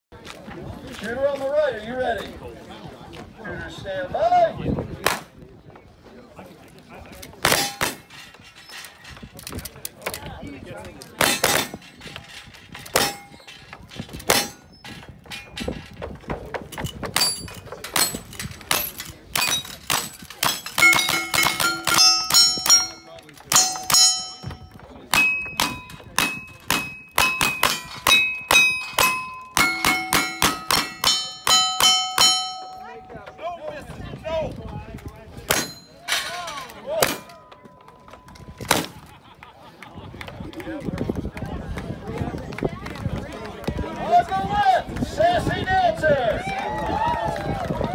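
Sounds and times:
gunshots: 0:07.4 - 0:08.1
steel plate ringing clang: 0:12.9 - 0:16.0, 0:17.2 - 0:33.2, 0:35.5 - 0:37.5.

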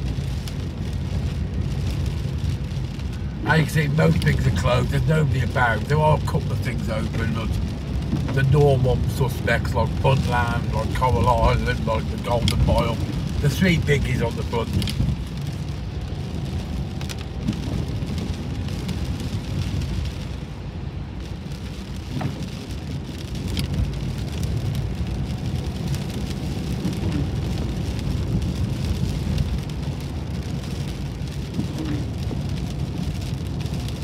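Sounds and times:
engine and tyre rumble: 0:00.0 - 0:34.0
rain on car roof: 0:00.0 - 0:34.0.

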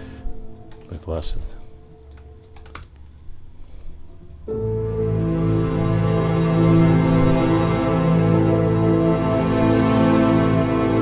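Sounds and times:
computer keyboard keystrokes: 0:02.1 - 0:03.0
tension drone and strings: 0:04.4 - 0:11.0.

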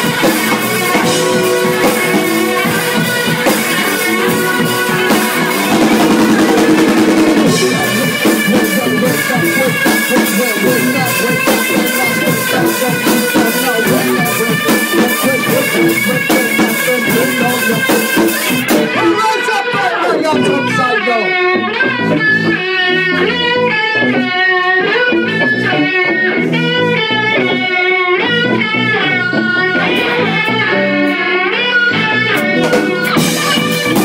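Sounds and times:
drum and cymbal hits: 0:00.0 - 0:19.0, 0:32.6 - 0:34.0
live rock band jamming: 0:00.0 - 0:34.0.

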